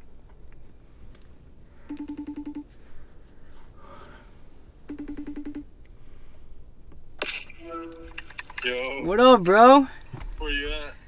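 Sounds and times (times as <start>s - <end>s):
pulsed phone ringing: 1.9s - 2.7s, 4.9s - 5.7s.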